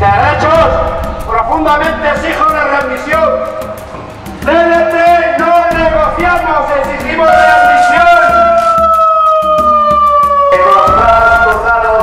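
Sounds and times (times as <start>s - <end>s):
megaphone siren wailing: 7.2s - 12.0s.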